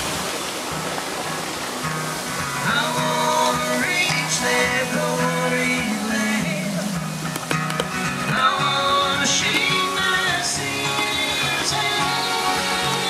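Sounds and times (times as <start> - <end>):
band playing a song: 2.1 - 13.0
person singing: 2.6 - 7.4, 8.0 - 13.0.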